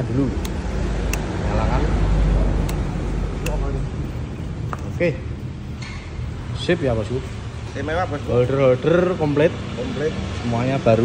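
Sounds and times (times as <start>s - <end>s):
ignition key switch click: 0.4s - 1.3s, 2.6s - 3.6s.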